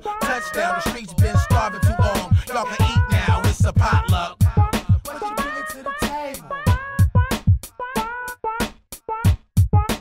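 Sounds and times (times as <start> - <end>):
rapped vocals: 0.0 - 8.1
hip hop beat: 0.0 - 10.0.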